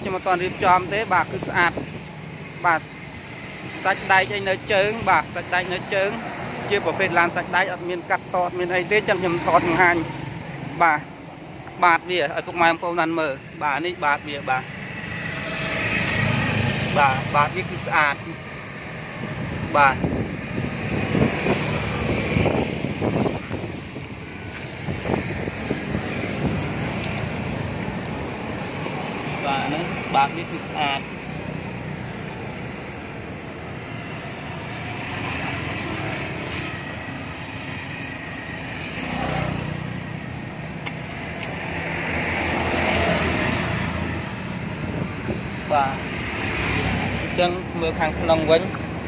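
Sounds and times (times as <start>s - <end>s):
wind on microphone: 18.8s - 31.2s, 42.6s - 46.5s.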